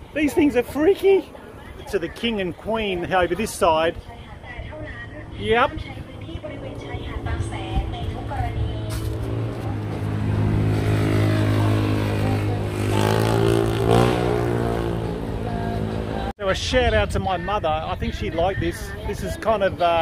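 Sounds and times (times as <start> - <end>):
vehicle engine passing: 5.2 - 16.3.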